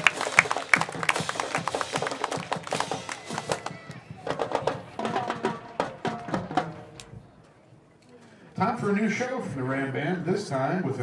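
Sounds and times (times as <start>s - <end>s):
crowd clapping: 0.0s - 4.0s.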